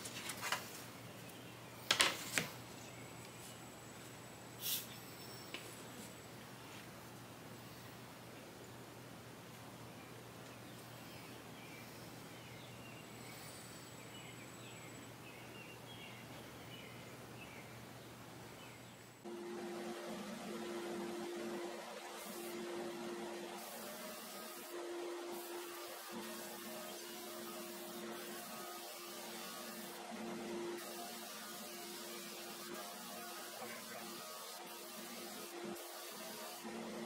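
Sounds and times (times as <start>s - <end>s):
thickness planer running: 19.3s - 37.0s.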